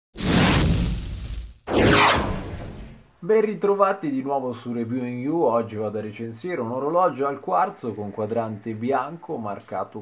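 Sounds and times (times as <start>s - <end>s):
whoosh sound effects: 1.7s - 3.0s.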